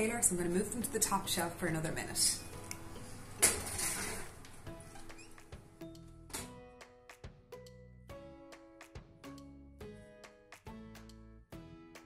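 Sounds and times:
background music with plucked notes: 0.0 - 12.0
metal baking tray clattering: 3.4 - 4.4.

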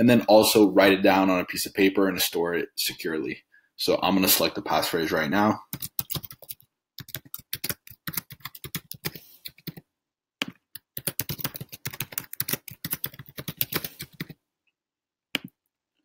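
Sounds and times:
rapid typing on keyboard: 5.6 - 9.8, 10.4 - 14.4.

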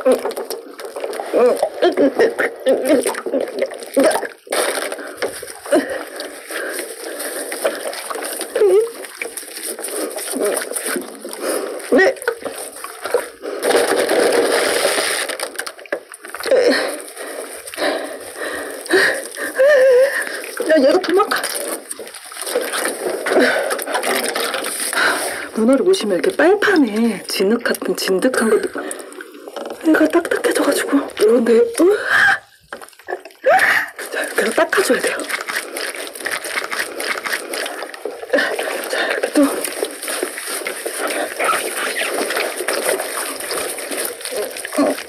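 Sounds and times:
wet squelching and rubbing: 0.0 - 45.0
woman's voice: 1.3 - 4.3, 11.9 - 12.4, 19.6 - 21.5, 25.5 - 29.0, 29.8 - 32.3, 34.0 - 35.3, 38.4 - 39.7, 44.3 - 45.0.

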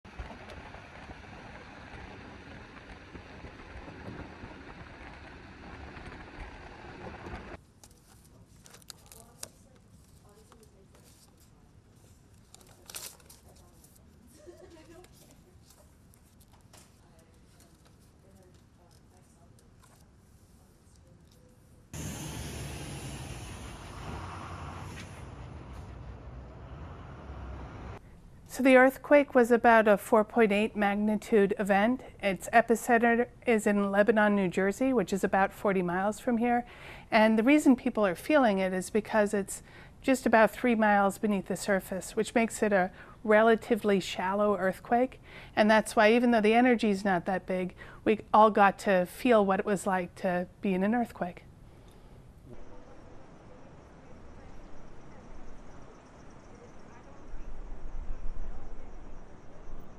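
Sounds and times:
outdoor city noise: 0.0 - 9.0, 9.8 - 59.9
wind rumbling on microphone: 0.1 - 7.6
paper pages rustling: 7.6 - 21.6
city street traffic: 22.0 - 28.0.

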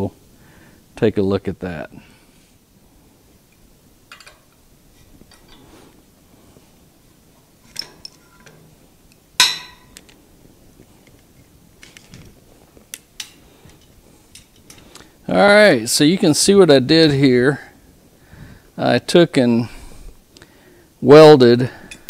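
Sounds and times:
wrench and steel parts clinking: 4.1 - 4.5, 7.7 - 8.6.

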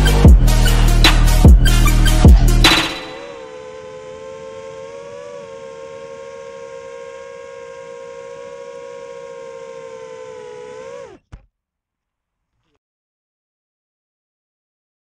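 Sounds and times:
drone motors humming: 0.0 - 11.3.

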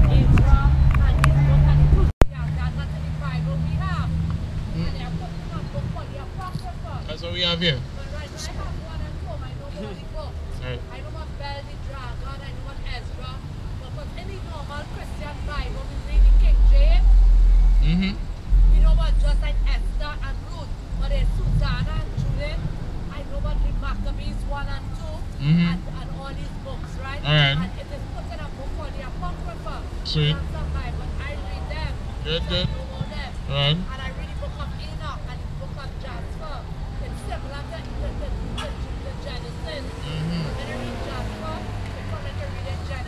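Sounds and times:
voices talking: 0.0 - 43.0
loud deep rumble: 15.4 - 24.9.

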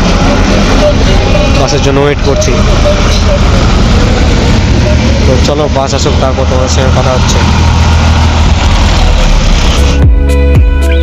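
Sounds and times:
bus engine idling: 0.0 - 10.0
person speaking: 0.6 - 7.6.

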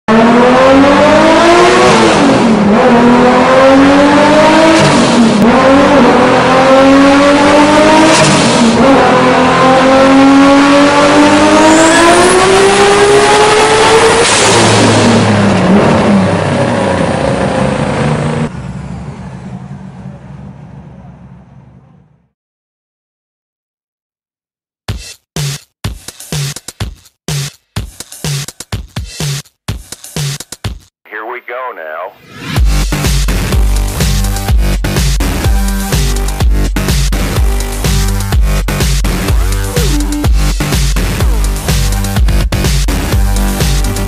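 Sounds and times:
car engine accelerating hard: 0.1 - 22.2, 32.4 - 44.0.

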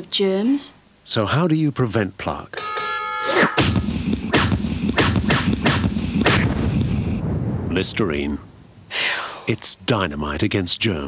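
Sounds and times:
explosion bangs: 3.6 - 9.5
low rumble: 6.2 - 9.0.

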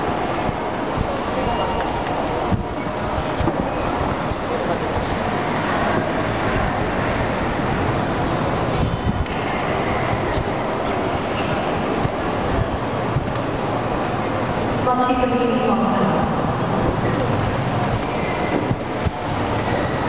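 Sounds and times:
crowd murmur in reverberant room: 0.0 - 20.0.

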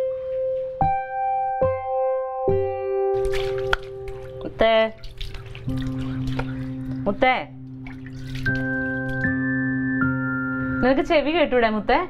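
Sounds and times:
electric keyboard chords: 0.0 - 4.9, 8.5 - 11.3.

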